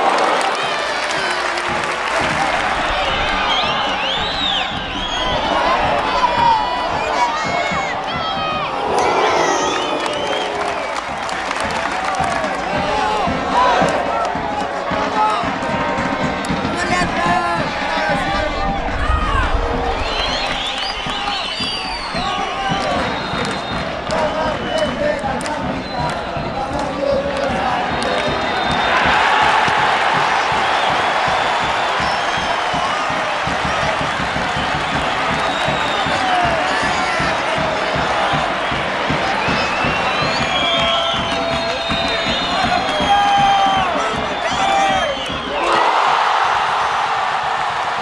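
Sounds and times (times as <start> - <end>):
stadium crowd shouting: 0.0 - 48.0.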